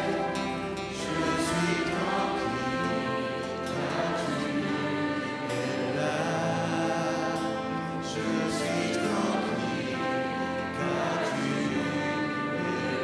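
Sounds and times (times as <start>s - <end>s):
violins flute and trumpet playing: 0.0s - 13.0s.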